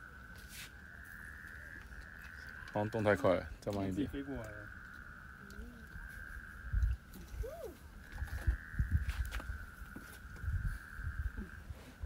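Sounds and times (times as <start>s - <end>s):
high-pitched animal chorus: 0.7s - 12.0s
wind rumbling on microphone: 0.8s - 12.0s.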